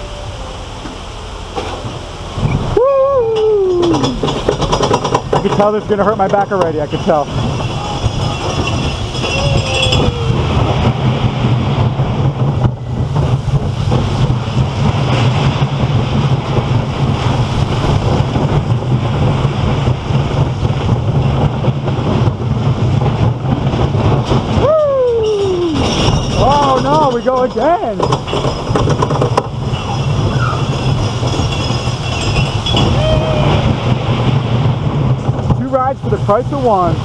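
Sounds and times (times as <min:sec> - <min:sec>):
roller coaster rumbling: 0:00.0 - 0:37.0
wind on microphone: 0:02.2 - 0:37.0.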